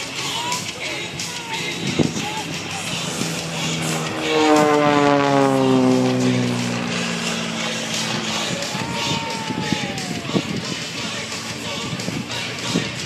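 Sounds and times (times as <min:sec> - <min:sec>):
propeller plane passing by: 0:00.0 - 0:13.0
thin falling whine: 0:01.4 - 0:11.8.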